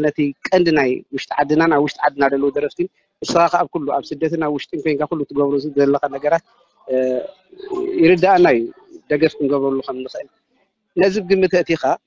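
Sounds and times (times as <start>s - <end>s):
man talking: 0.0s - 10.3s, 11.0s - 12.0s.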